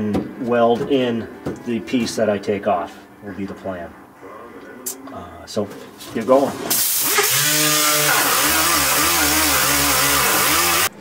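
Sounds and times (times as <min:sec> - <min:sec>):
air die grinder whining: 0:06.8 - 0:11.0.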